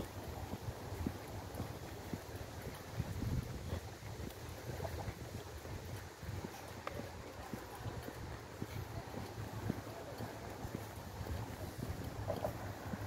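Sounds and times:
footsteps on park path: 0:00.0 - 0:13.0
wind rumble on microphone: 0:00.0 - 0:13.0.

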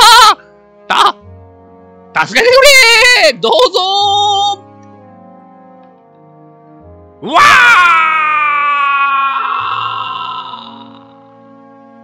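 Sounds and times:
background music: 0:00.0 - 0:12.0
man's long drawn-out cry: 0:07.2 - 0:11.2.

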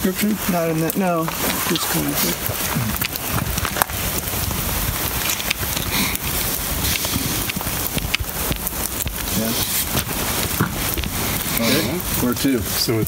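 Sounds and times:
rain pattering: 0:00.0 - 0:13.0
wind rumbling on microphone: 0:00.0 - 0:13.0.

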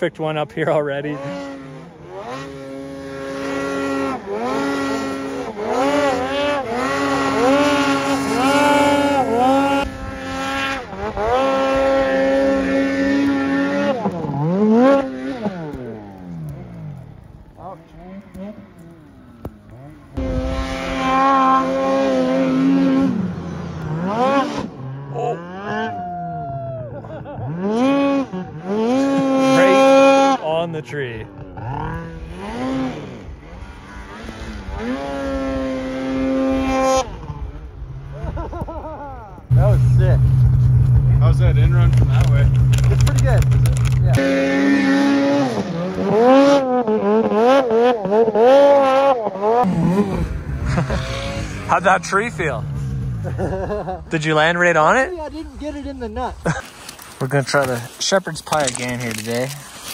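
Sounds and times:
snowmobile engines revving: 0:00.0 - 0:59.9.

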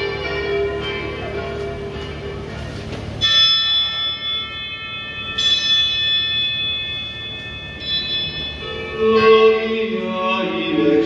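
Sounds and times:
bell tolling: 0:00.0 - 0:11.0.

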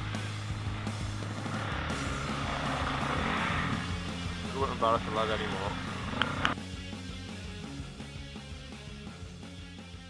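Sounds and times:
dirt bike engine revving: 0:00.0 - 0:06.6
background music: 0:00.0 - 0:10.0.

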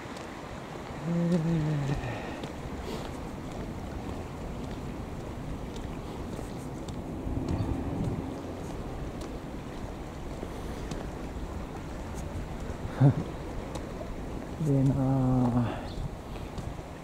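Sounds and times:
wind rumbling on microphone: 0:00.0 - 0:17.0.

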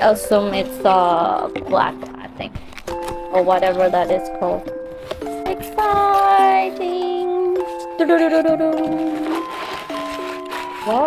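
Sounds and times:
background music of held notes: 0:00.0 - 0:11.0
packing paper rustling: 0:02.5 - 0:11.0.

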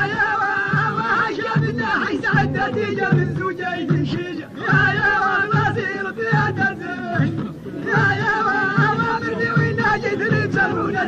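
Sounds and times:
men singing folk song: 0:00.0 - 0:11.0.

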